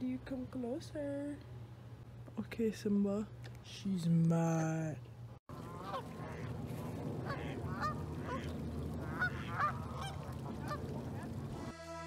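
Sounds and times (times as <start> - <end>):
low background rumble: 0.0 - 11.8
waterfowl honking: 5.5 - 12.0.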